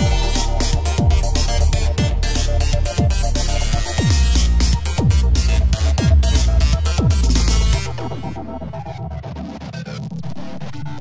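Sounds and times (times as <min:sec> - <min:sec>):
low synth drone: 0:00.0 - 0:08.9.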